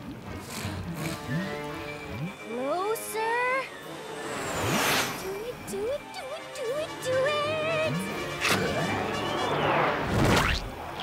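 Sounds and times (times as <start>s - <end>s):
long whoosh: 3.8s - 5.4s
cartoon score music: 5.2s - 9.7s.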